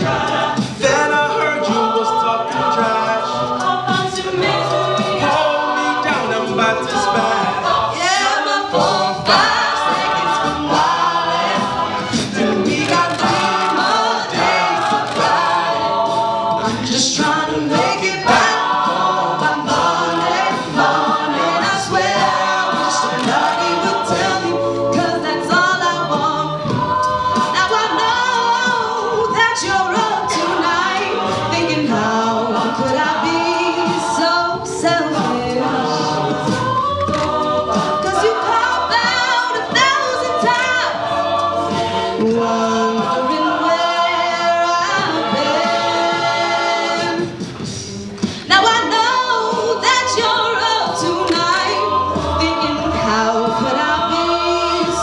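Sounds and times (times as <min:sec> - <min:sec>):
backing voices singing harmony: 0:00.0 - 0:55.0
soloists singing into microphones: 0:00.0 - 0:55.0
vocal percussion: 0:00.0 - 0:55.0.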